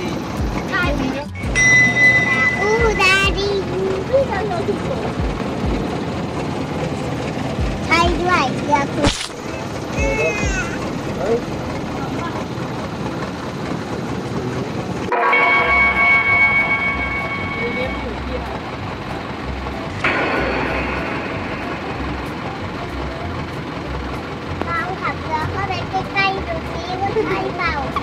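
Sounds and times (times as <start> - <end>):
steady high whine: 0.0 - 26.9
boat motor running: 0.0 - 28.0.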